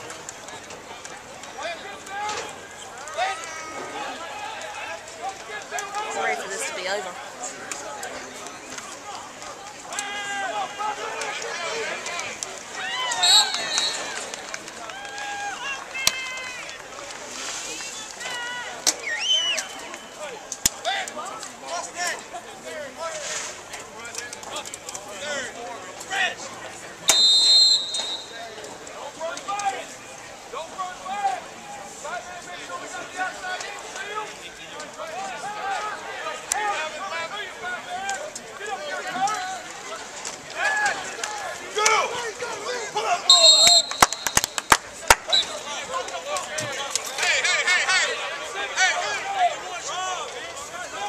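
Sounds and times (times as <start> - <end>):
players and coaches shouting: 0.6 - 16.8, 18.2 - 23.0, 24.5 - 51.0
referee's whistle: 13.1 - 14.2, 19.0 - 20.2, 27.1 - 28.5, 43.2 - 45.7.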